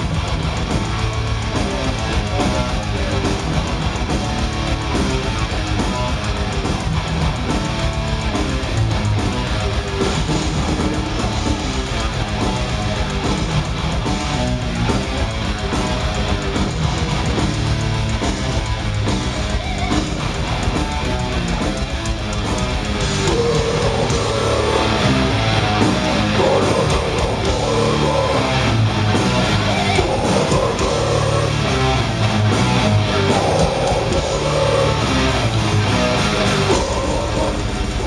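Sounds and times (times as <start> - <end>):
bass: 0.0 - 38.0
distorted electric guitars: 0.0 - 38.0
fast drumming: 0.0 - 38.0.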